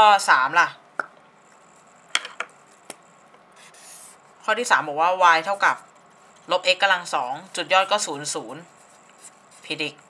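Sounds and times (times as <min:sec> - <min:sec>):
marker scraping across paper: 0:01.4 - 0:10.0
marker tapping on paper: 0:02.1 - 0:03.0.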